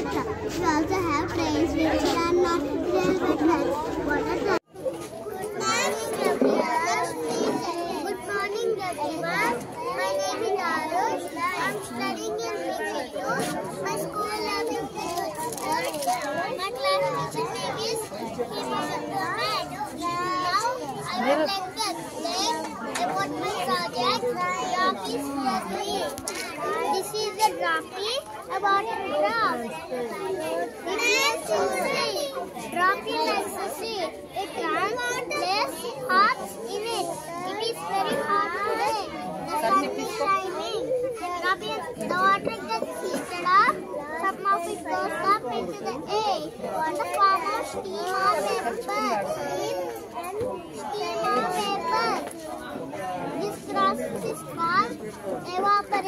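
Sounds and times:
young children chattering: 0.0s - 56.0s.

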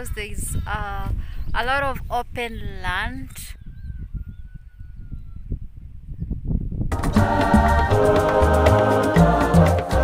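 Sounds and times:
wind rumbling on microphone: 0.0s - 7.2s
gospel choir music: 6.9s - 10.0s.

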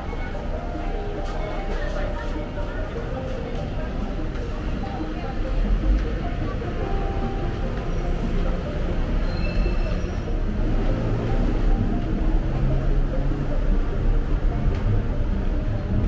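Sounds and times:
passers-by voices: 0.0s - 16.0s
traffic rumble: 0.0s - 16.0s.

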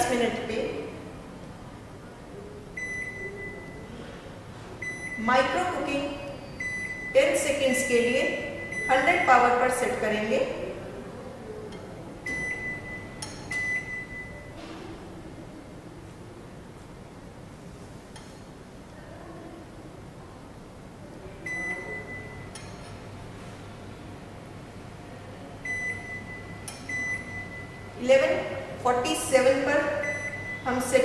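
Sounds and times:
microwave control panel beeps: 2.8s - 3.9s, 4.8s - 5.6s, 6.3s - 9.3s, 11.7s - 14.6s, 21.4s - 23.0s, 25.6s - 28.0s, 30.0s - 30.9s.

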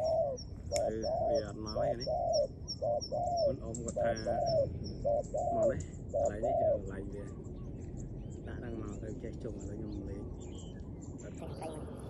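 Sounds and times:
dove cooing: 0.0s - 12.0s.

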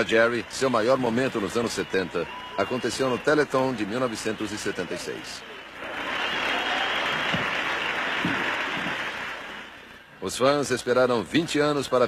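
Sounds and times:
audience applauding: 0.0s - 10.1s.

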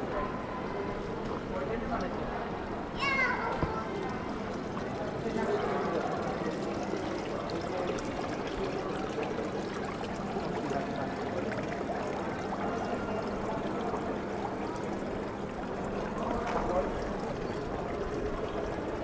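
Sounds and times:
fountain water trickling: 0.0s - 19.0s.

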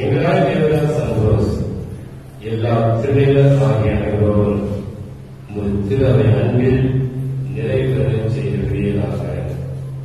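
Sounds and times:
man chanting a prayer: 0.0s - 10.0s.

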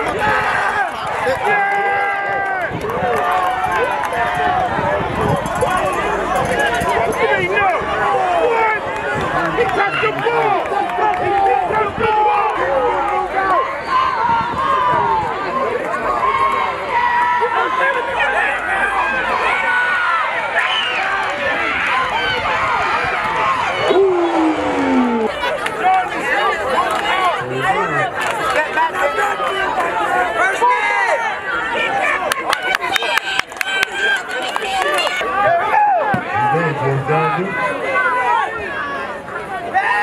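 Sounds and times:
crowd shouting and cheering: 0.0s - 40.0s.

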